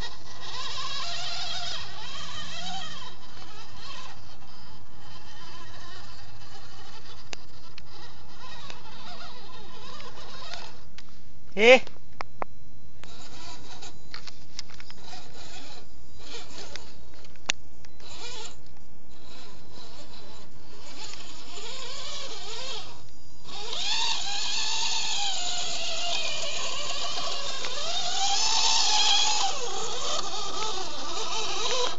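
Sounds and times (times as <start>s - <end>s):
electric motor and gearbox whining: 0.0s - 12.2s, 12.9s - 31.9s.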